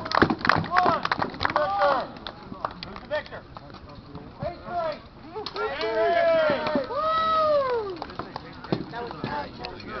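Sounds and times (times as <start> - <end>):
long drawn-out shouts: 5.6 - 8.0.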